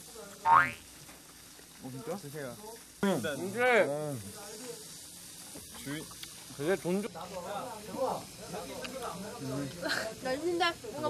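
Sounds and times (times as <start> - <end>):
meat sizzling on a grill: 0.0 - 11.0.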